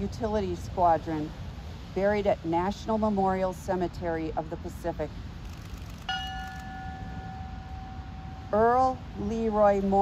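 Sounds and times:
ship's bell ringing: 6.1 - 9.0.

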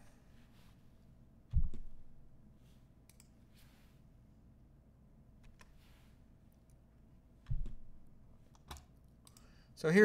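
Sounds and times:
faint computer input clicks: 8.6 - 9.5
man speaking: 9.8 - 10.0.

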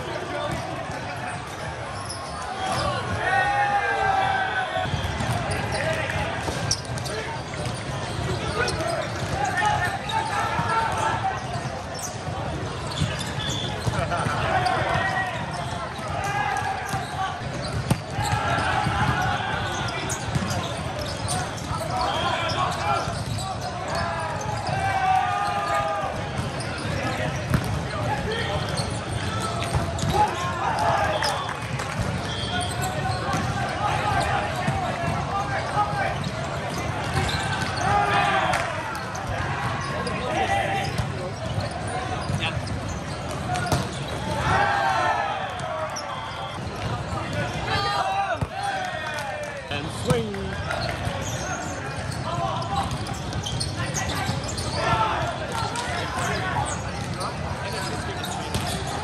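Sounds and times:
crowd in a large hall: 0.0 - 59.0
players shouting calls: 0.0 - 59.0
balls bouncing on hard court: 0.1 - 3.4, 4.8 - 59.0.

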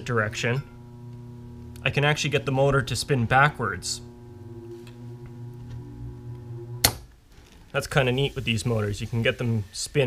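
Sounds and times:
blower motor humming: 0.0 - 7.0.

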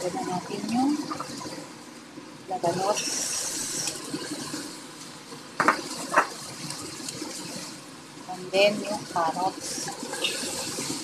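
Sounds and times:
food sizzling in hot oil: 2.6 - 4.5.

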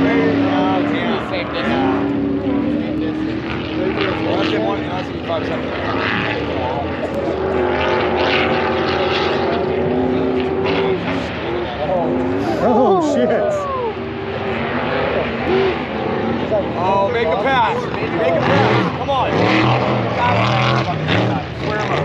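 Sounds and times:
race car engines at high revs: 0.0 - 22.0.

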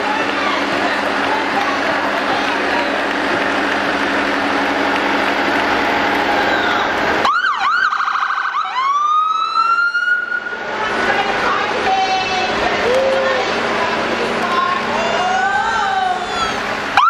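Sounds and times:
street noise: 0.0 - 17.0
electronic vehicle siren: 6.5 - 10.6.

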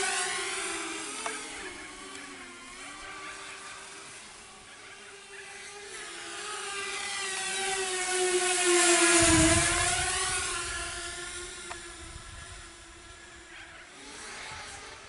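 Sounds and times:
quadcopter motors whining: 0.0 - 15.0.

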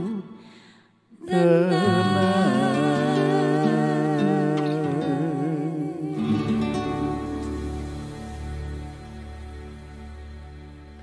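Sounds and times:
man singing with vibrato: 1.2 - 7.4.

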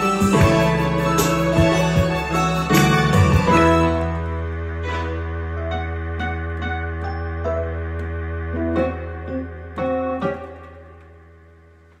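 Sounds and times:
digital piano chord: 0.0 - 12.0
held low bass note: 0.6 - 10.2.

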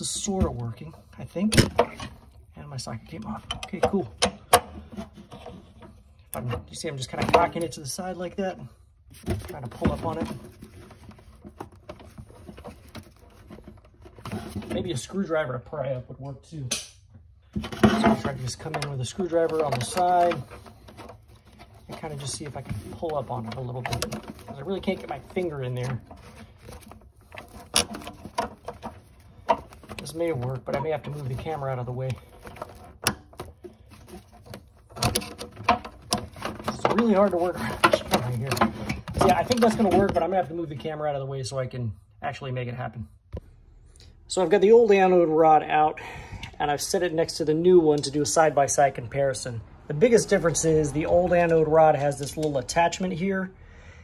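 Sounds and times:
screwdriver scraping metal: 17.6 - 39.7.

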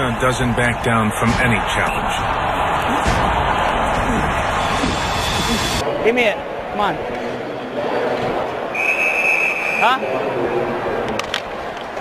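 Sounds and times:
arena background noise: 0.0 - 12.0
referee whistle: 8.7 - 10.0.

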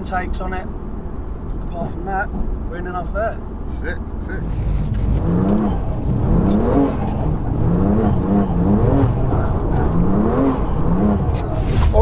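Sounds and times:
car engine revving from cabin: 4.3 - 12.0.

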